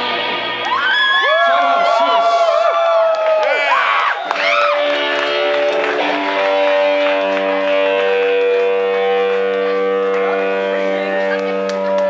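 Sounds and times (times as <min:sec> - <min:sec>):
electric guitar droning note: 0:04.6 - 0:12.0.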